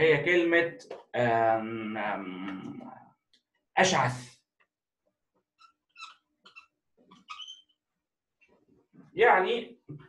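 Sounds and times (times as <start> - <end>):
marker squeaking on whiteboard: 5.4 - 8.7.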